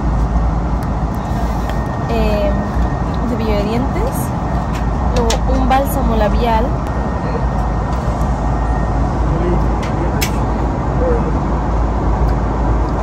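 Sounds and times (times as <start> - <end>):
airliner cabin noise: 0.0 - 13.0.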